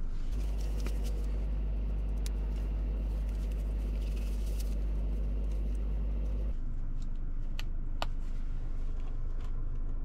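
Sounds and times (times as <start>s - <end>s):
low rumble inside car cabin: 0.0s - 10.0s.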